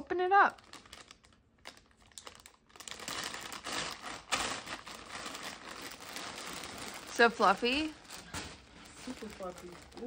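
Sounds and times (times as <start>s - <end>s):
plastic bag crinkling: 0.3s - 10.0s.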